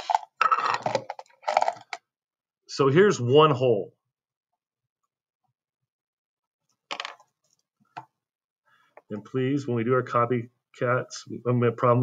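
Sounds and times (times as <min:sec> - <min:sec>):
clatter of small hard objects: 0:00.0 - 0:02.0.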